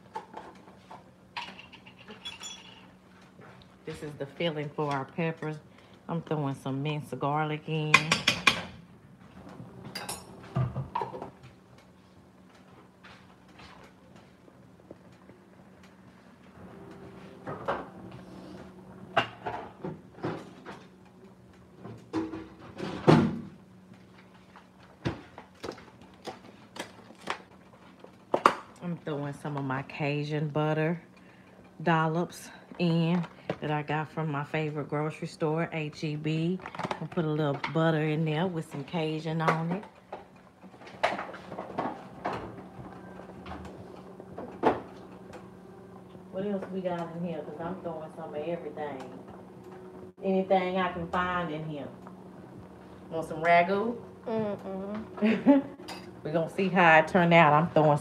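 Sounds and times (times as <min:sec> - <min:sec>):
steady low hum: 0:00.0 - 0:58.0
knocks and clicks of kitchen items: 0:07.7 - 0:08.8, 0:09.4 - 0:11.9, 0:19.1 - 0:28.8, 0:36.3 - 0:47.2.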